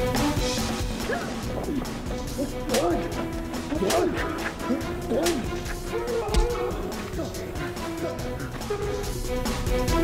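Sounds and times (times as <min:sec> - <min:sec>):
dramatic background music: 0:00.0 - 0:10.0
people shouting and grunting: 0:00.3 - 0:09.6.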